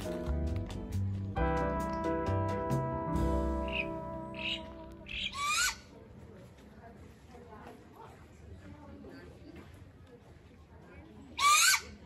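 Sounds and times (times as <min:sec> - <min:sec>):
background music sustained notes: 0:00.0 - 0:05.5
bird squawking: 0:03.6 - 0:05.9, 0:11.4 - 0:12.0.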